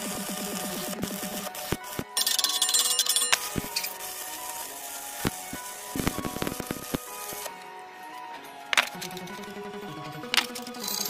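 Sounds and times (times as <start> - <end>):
arc welding crackling hiss: 0.0 - 7.6
background music: 0.0 - 11.0.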